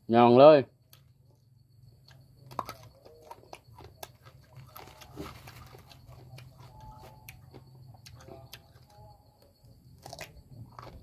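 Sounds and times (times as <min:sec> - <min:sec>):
person chewing food: 0:02.0 - 0:11.0.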